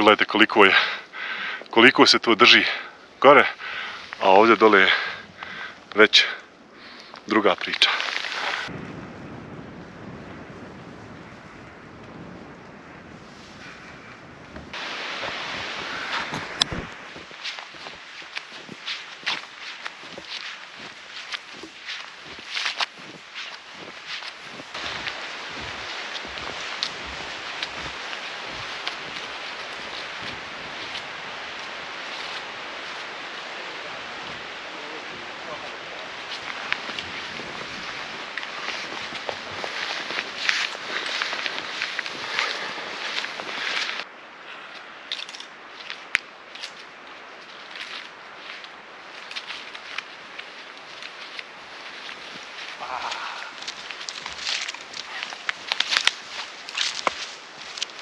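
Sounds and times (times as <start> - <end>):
snowshoe footsteps in snow: 6.8 - 8.7, 13.1 - 44.1, 45.1 - 58.0
steady rushing noise: 7.3 - 44.3
clicks of steps and poles: 52.9 - 58.0.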